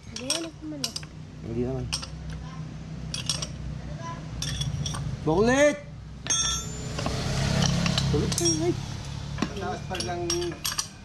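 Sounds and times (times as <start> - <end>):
steel wrench clinking: 0.0 - 1.1, 1.9 - 2.3, 3.1 - 3.6, 4.4 - 5.1, 6.2 - 8.8, 9.4 - 11.0
metal tool clicks: 9.4 - 11.0.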